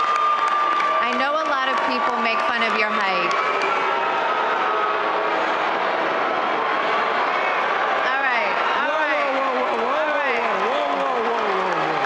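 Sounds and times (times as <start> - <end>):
audience booing: 0.0 - 12.0.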